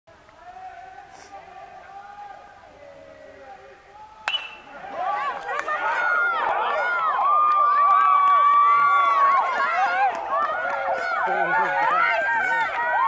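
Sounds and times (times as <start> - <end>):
spectators yelling and cheering: 0.2 - 13.0
bat cracking ball: 4.2 - 5.8.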